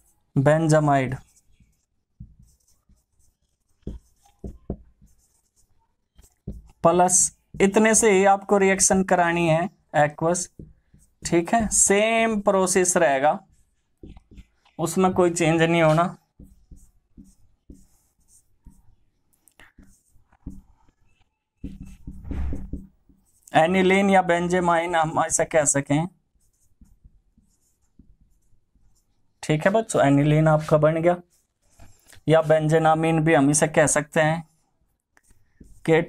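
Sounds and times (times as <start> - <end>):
marker writing on whiteboard: 0.0 - 36.0
marker squeaks: 1.1 - 9.0, 13.5 - 23.5.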